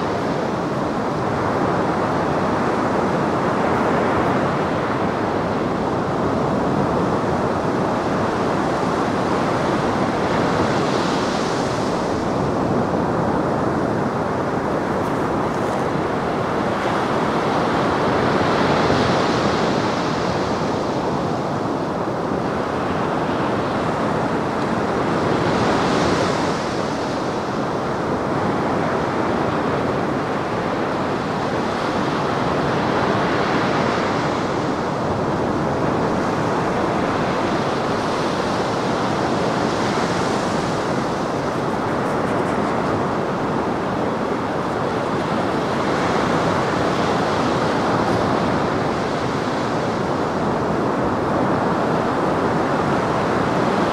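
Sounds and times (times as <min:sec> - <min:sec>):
surf breaking on shore: 0:00.0 - 0:53.9.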